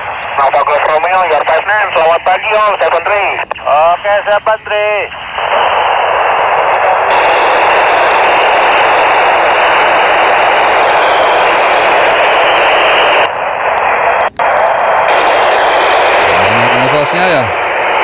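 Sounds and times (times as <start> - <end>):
radio static hiss: 0.0 - 18.0.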